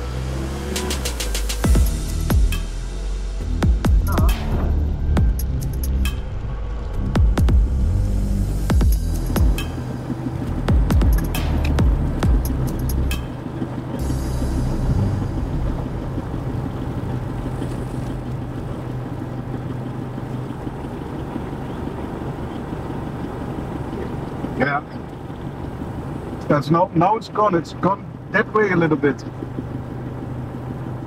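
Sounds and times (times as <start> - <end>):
music with heavy beats: 0.0 - 6.3, 7.0 - 13.4
vehicle engine idling: 0.0 - 31.0.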